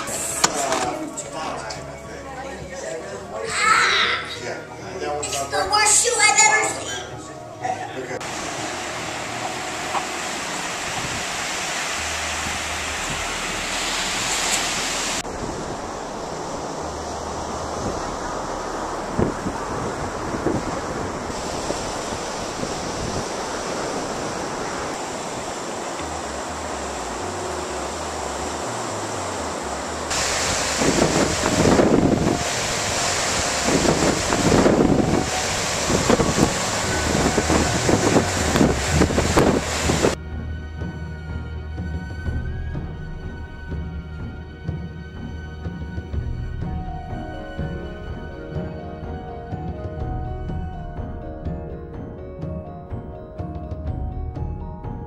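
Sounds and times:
ocean surf washing onto beach: 8.2s - 40.2s
wind buffeting microphone: 9.3s - 40.2s.

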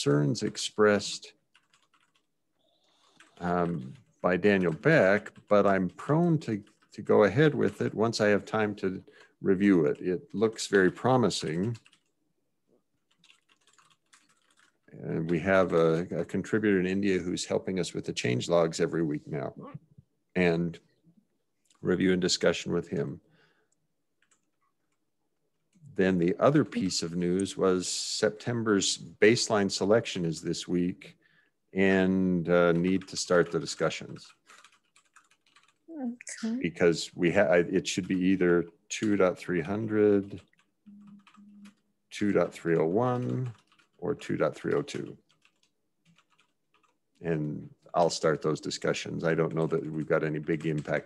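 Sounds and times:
person speaking: 0.0s - 1.4s, 3.3s - 11.9s, 14.9s - 20.8s, 21.7s - 23.2s, 25.8s - 31.2s, 31.8s - 34.4s, 35.9s - 45.3s, 47.2s - 51.0s
computer keyboard typing: 1.5s - 2.3s, 2.9s - 12.1s, 13.0s - 16.4s, 24.2s - 24.6s, 32.7s - 35.8s, 37.9s - 38.4s, 40.1s - 47.0s, 49.6s - 51.0s
faint keyboard keystrokes: 13.1s - 16.4s.

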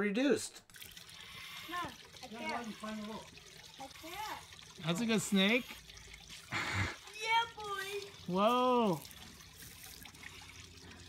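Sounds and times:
breath fizzing through soapy towel: 5.6s - 7.1s.

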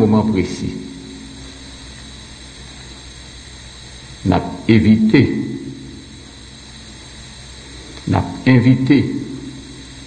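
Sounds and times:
room hiss and hum: 0.0s - 10.0s.

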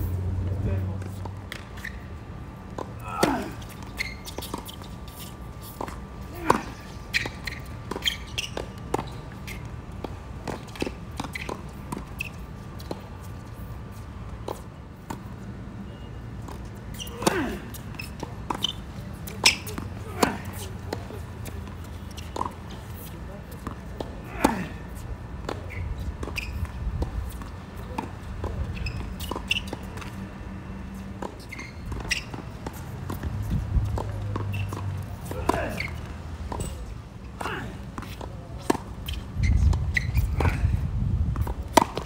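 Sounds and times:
shoe squeaks: 1.1s - 42.0s
tennis ball bouncing: 16.4s - 36.8s, 37.4s - 40.6s, 41.4s - 42.0s.

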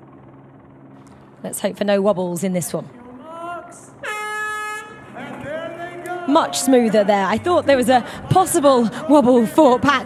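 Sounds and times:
person calling out: 3.2s - 7.5s
starting horn blast: 3.8s - 8.2s.

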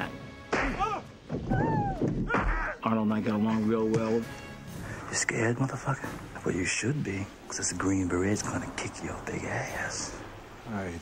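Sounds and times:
narration: 2.8s - 11.0s.

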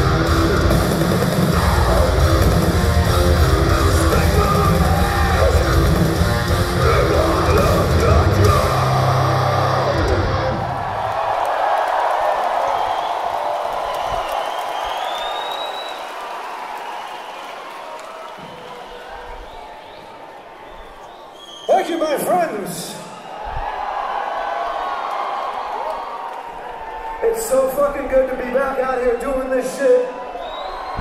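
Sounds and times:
heavy metal band playing live: 0.0s - 10.8s
crowd cheering and whistling: 0.0s - 31.0s.

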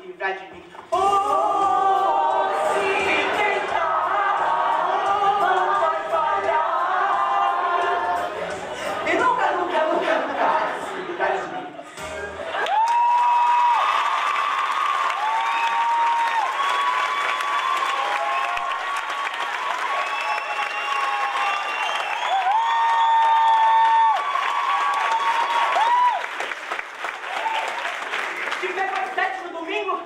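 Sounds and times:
audience applauding: 12.6s - 29.7s.

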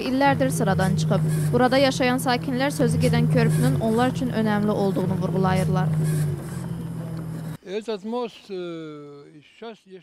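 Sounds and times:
vehicle engine humming: 0.0s - 7.6s.

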